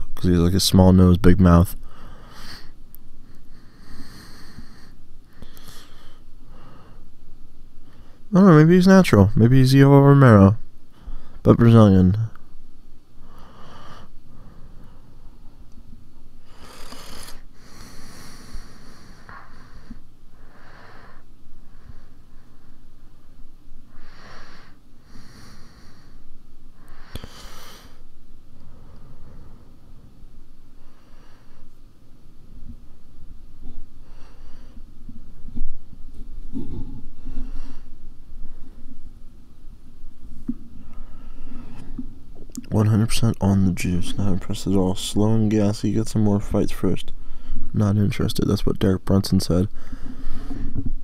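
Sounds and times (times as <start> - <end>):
person breathing: 1.8 - 7.1, 10.9 - 11.4, 13.2 - 15.3, 16.4 - 23.1, 23.9 - 30.1, 30.8 - 31.8, 33.9 - 34.9, 36.5 - 39.0, 40.6 - 42.2, 47.1 - 47.7, 49.7 - 51.0
man breathing into microphone: 49.7 - 50.9.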